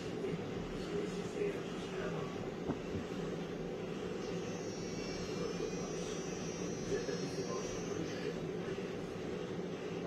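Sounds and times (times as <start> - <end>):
steady machine hum: 0.0 - 10.0
thin high whine: 0.0 - 10.0.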